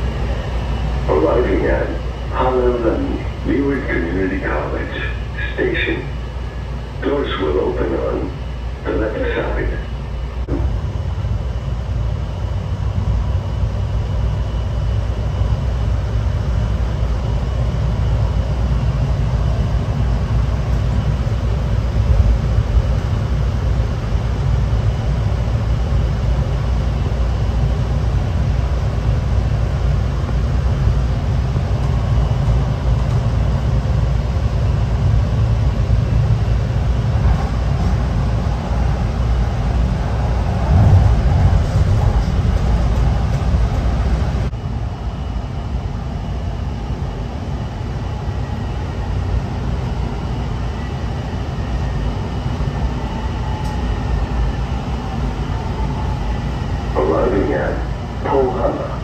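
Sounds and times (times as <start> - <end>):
train rumbling from inside car: 0.0 - 59.0.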